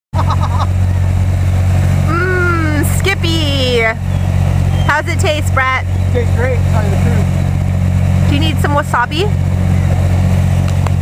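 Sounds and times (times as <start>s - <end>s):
boat engine droning: 0.1s - 11.0s.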